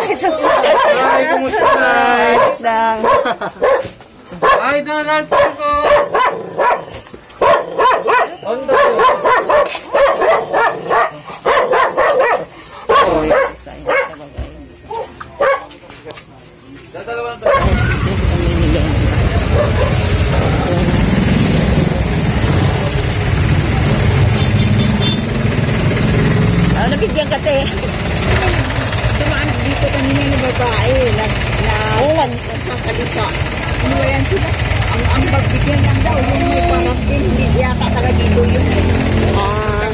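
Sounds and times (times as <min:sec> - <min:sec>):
broken calls and voices: 0:00.0 - 0:06.7, 0:16.6 - 0:39.9
traffic rumble: 0:00.0 - 0:39.9
motorcycle engines: 0:17.5 - 0:39.9.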